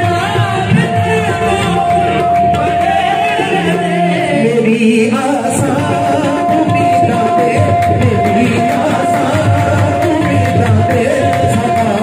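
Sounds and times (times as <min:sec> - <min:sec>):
harmonium drone: 0:00.0 - 0:12.0
men singing together: 0:00.0 - 0:12.0.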